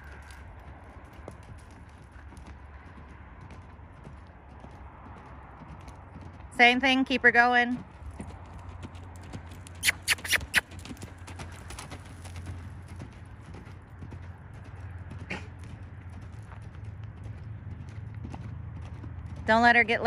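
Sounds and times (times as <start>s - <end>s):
horse hoofbeats on dirt: 0.0s - 20.0s.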